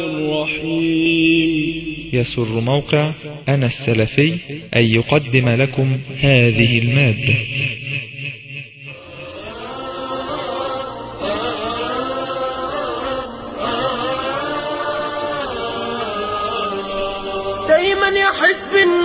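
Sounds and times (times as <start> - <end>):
voice chanting melodic notes: 0.0 - 19.0.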